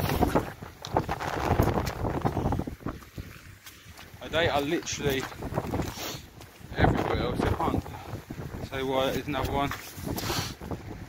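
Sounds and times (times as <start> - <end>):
footsteps on sand and shingle: 0.0 - 10.8
wind buffeting microphone: 0.0 - 11.0.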